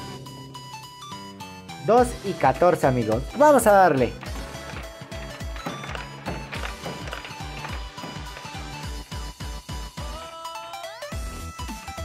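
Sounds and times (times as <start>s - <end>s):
electronic slot machine tune: 0.0s - 11.9s.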